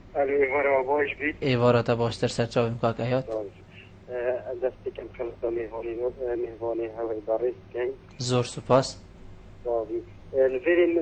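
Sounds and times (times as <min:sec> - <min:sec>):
person talking over telephone: 0:00.2 - 0:09.0, 0:09.7 - 0:11.0.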